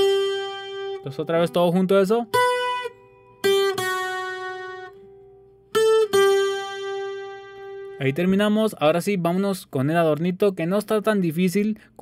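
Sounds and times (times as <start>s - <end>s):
acoustic guitar picking single notes: 0.0s - 10.3s.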